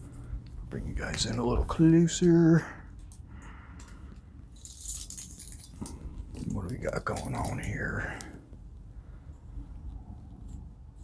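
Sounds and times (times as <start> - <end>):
small clicks and rattles: 3.0 - 8.4.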